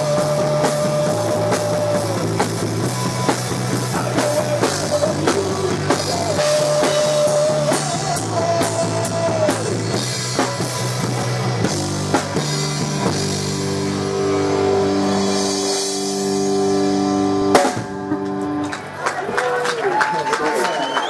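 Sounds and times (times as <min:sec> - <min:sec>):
drums and cymbals: 0:00.0 - 0:18.5
live rock band: 0:00.0 - 0:19.9.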